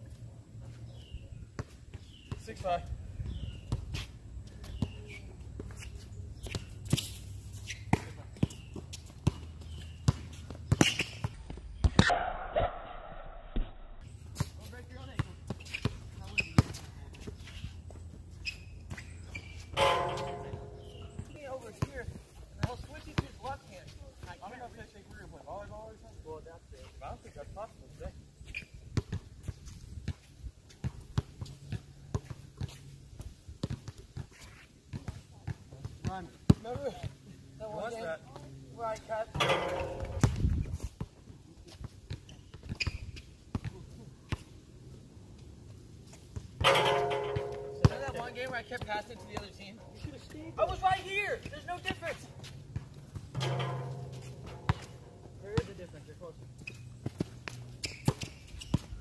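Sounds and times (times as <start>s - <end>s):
basketball bouncing on asphalt: 7.9s - 12.1s, 14.3s - 17.4s, 19.8s - 22.0s, 30.8s - 32.9s, 33.6s - 34.3s, 51.4s - 59.0s
ringing clang: 19.8s - 21.4s, 39.4s - 40.4s, 46.6s - 48.8s, 53.3s - 55.3s
players' footsteps: 45.2s - 59.0s.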